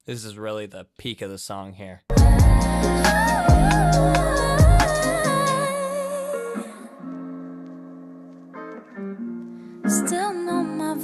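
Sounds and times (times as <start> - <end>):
sustained guitar chords: 2.1 - 5.7
pop song with band and drums: 2.1 - 6.9.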